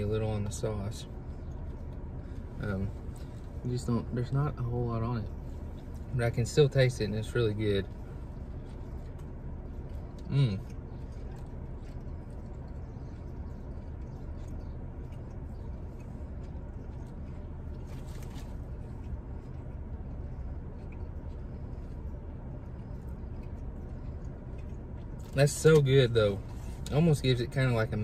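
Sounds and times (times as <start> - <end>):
car cabin hum: 0.0 - 28.0
man chewing food: 0.0 - 28.0.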